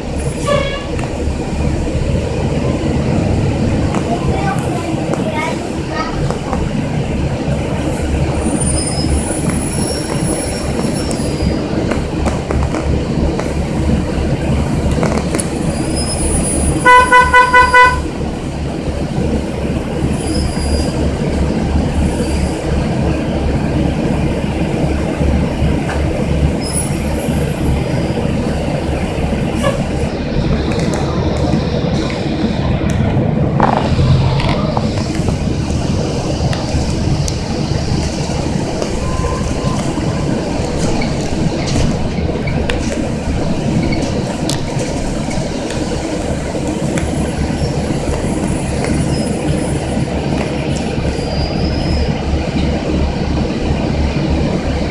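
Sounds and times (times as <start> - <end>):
bus diesel engine: 0.0 - 54.9
road noise: 0.0 - 54.9.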